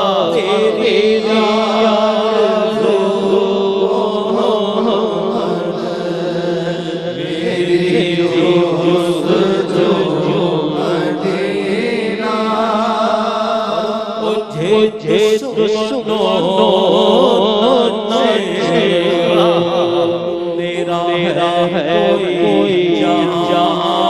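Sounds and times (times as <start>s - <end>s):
man chanting devotional song: 0.0s - 24.0s.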